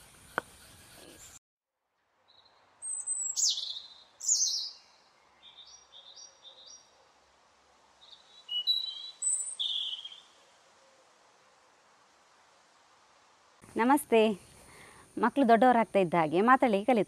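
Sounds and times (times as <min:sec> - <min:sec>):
bird whistles and chirps: 0:02.8 - 0:04.8, 0:08.3 - 0:10.3.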